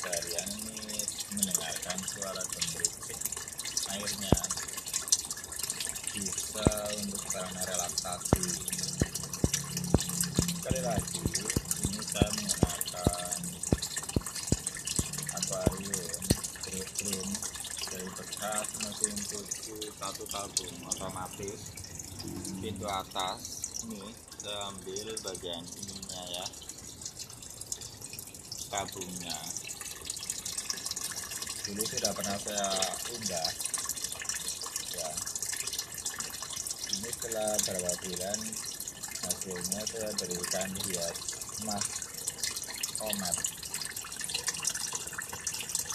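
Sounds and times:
water drip plops: 0.0 - 45.9
water splashing into pond: 0.0 - 45.9.

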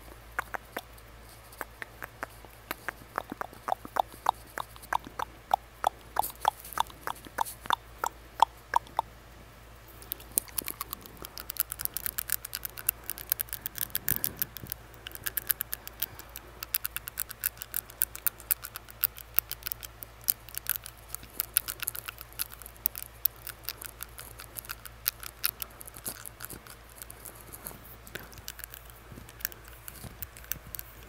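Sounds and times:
tongue barbell clicking on teeth: 0.4 - 0.9, 1.6 - 9.1, 10.0 - 31.0.

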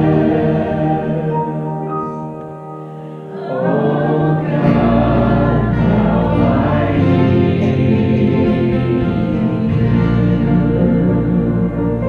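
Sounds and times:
voices singing together: 0.0 - 2.4, 3.2 - 12.0
acoustic guitar: 0.0 - 12.0
worship band playing: 0.0 - 12.0
deep low notes: 3.7 - 12.0.

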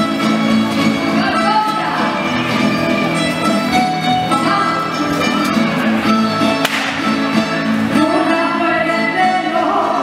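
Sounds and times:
folk dance music plucked strings: 0.0 - 10.0
sharp click: 6.6 - 7.0.

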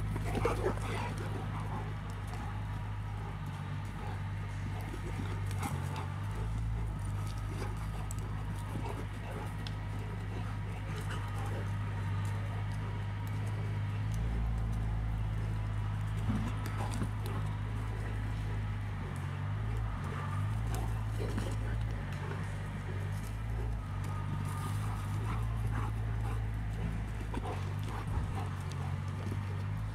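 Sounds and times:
dog paws thudding on dirt: 0.0 - 29.9
steady low hum: 0.0 - 29.9.

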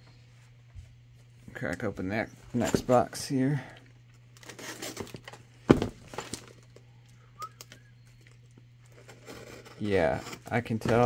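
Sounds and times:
knife scraping through cardboard: 4.4 - 5.1, 9.0 - 10.8.

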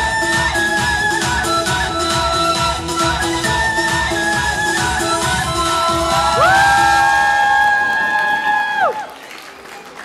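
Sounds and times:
audience whooping: 6.0 - 9.3.

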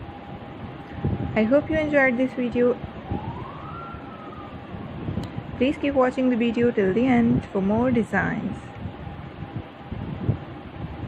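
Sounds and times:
siren wailing: 0.0 - 5.1.

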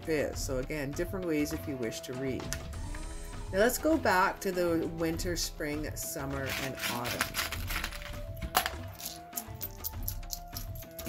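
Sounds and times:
small trinkets clinking: 6.5 - 11.0.

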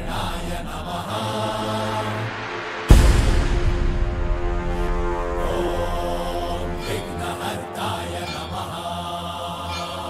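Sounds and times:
person chanting: 0.0 - 3.2, 4.5 - 10.0
devotional music: 0.0 - 10.0.

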